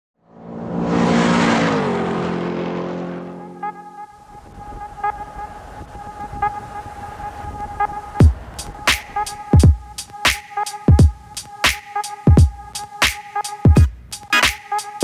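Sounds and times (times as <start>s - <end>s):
car passing at speed: 0.2s - 8.9s
music: 3.4s - 15.0s.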